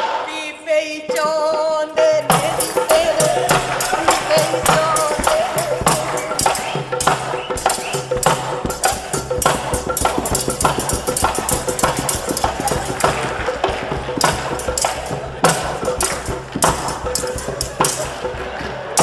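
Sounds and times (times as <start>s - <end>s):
music with dhol drum beating: 2.3s - 19.0s.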